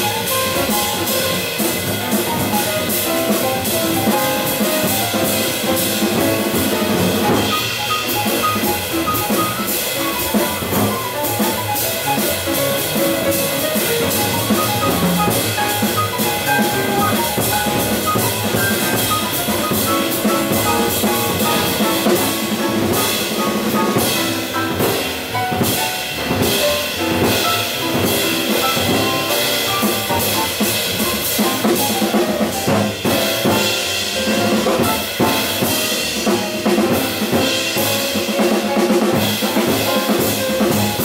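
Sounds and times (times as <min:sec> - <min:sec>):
drum kit with snare and cymbals: 0:00.0 - 0:41.0
jazz piano runs: 0:00.0 - 0:41.0.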